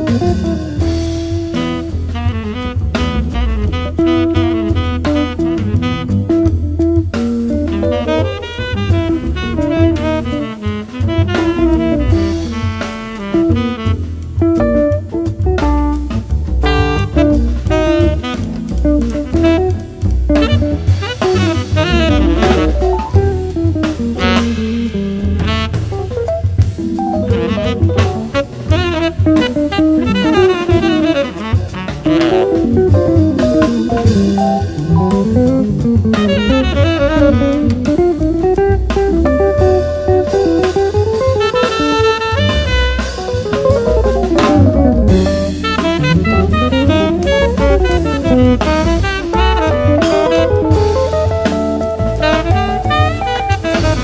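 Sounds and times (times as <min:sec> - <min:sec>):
bass: 0:00.0 - 0:54.0
drum kit: 0:00.0 - 0:54.0
guitar: 0:00.0 - 0:54.0
saxophone: 0:00.0 - 0:54.0.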